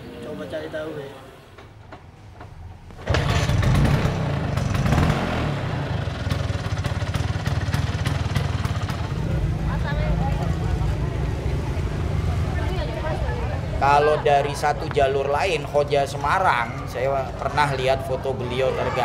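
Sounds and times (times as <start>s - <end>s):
motor scooter engine running: 3.0s - 10.4s.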